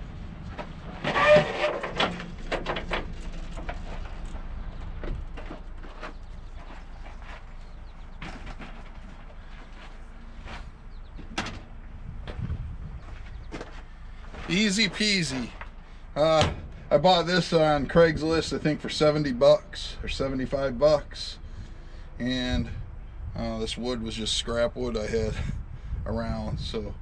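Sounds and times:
low steady rumble: 0:00.0 - 0:27.0.

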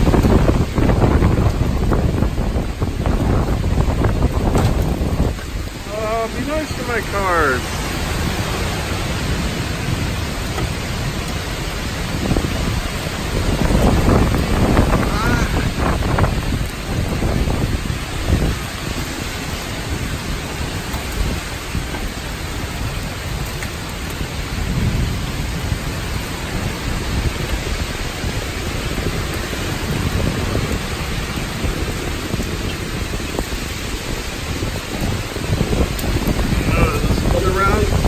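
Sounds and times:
heavy rain: 0:00.0 - 0:38.0
wind gusts buffeting microphone: 0:00.0 - 0:38.0.

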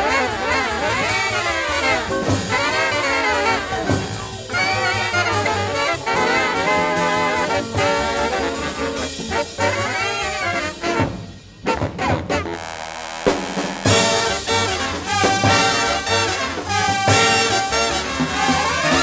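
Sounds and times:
big band playing swing: 0:00.0 - 0:19.0
trumpets and trombones playing: 0:00.0 - 0:19.0.

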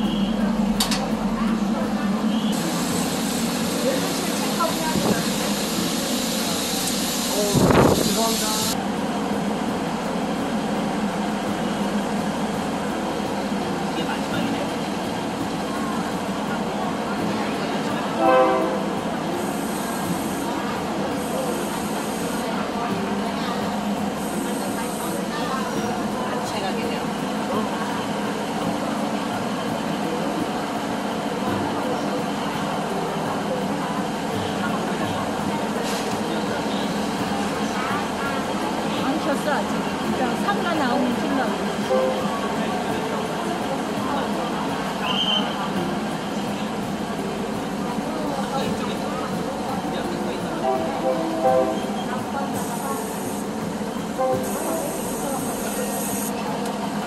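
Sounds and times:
people's voices: 0:00.0 - 0:57.0
train rumbling on rails: 0:00.0 - 0:57.0.

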